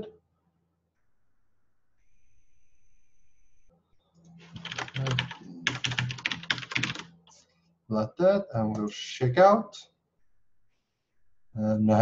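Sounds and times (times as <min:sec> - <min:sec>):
typing on computer keyboard: 0:04.6 - 0:07.1.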